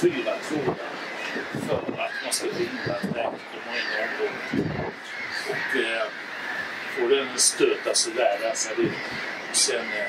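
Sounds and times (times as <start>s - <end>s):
man's voice: 0.0s - 0.8s, 1.6s - 6.1s, 7.0s - 9.0s, 9.6s - 10.0s
harsh gull calls: 0.0s - 10.0s.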